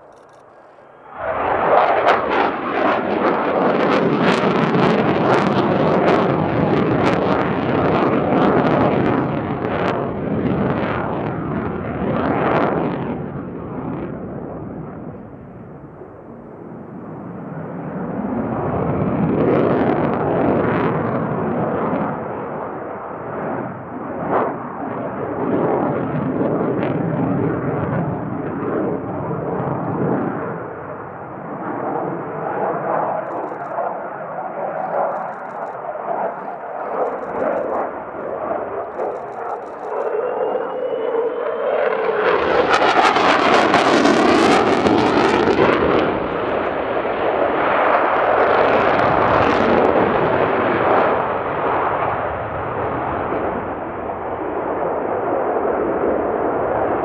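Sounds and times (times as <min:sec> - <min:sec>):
rising jet whine: 0:00.0 - 0:05.0, 0:29.6 - 0:52.2
fighter jet engine roar: 0:00.0 - 0:57.0.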